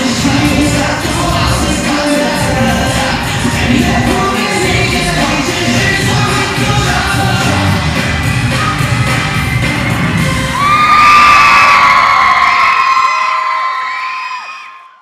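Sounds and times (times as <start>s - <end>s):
live pop music: 0.0s - 11.8s
crowd cheering and screaming: 8.0s - 15.0s.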